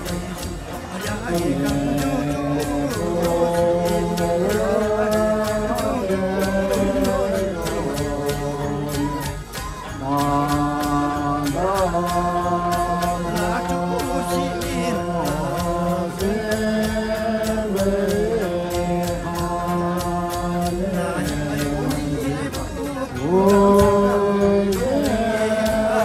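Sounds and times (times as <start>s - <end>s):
chanted singing in long notes: 0.0s - 26.0s
steady ticking beat: 0.0s - 26.0s.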